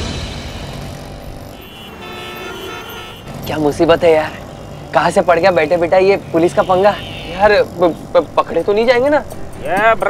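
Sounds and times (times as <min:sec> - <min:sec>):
road traffic noise: 0:00.0 - 0:10.0
long vehicle horn: 0:01.5 - 0:07.8.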